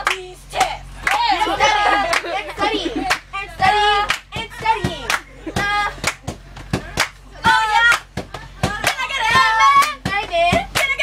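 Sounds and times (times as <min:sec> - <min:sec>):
sharp hand claps: 0:06.0 - 0:07.2
girls chanting a cheer: 0:07.4 - 0:08.0, 0:08.7 - 0:11.0.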